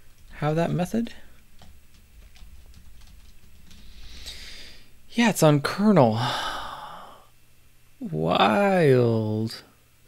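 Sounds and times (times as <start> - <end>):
man sighing: 6.1 - 7.3
man speaking: 8.0 - 9.6.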